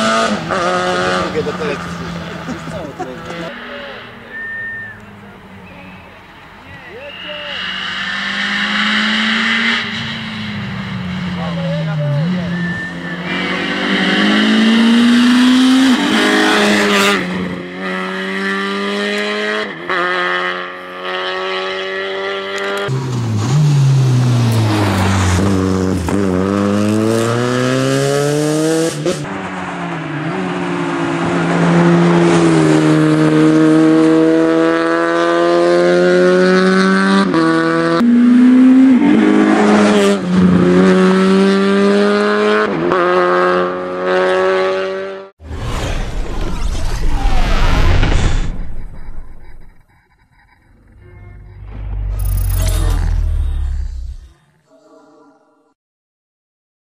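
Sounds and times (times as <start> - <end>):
rally car engine revving: 0.0 - 5.9, 7.1 - 54.4.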